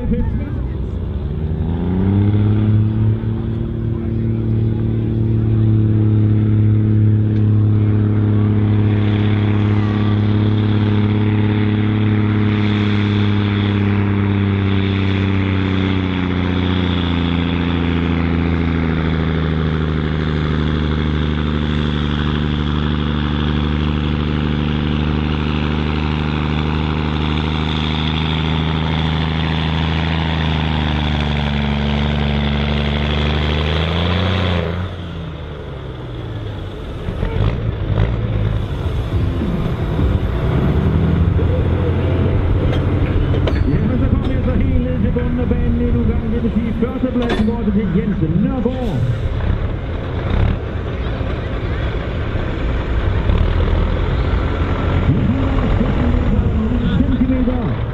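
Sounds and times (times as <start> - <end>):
diesel engine pulling at full load: 0.0 - 57.9
clattering and rumbling: 36.5 - 57.9.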